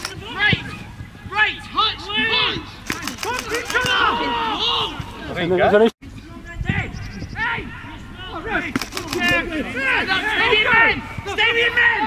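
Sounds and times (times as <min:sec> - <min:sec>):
footballers shouting: 0:00.0 - 0:05.8, 0:07.4 - 0:12.0.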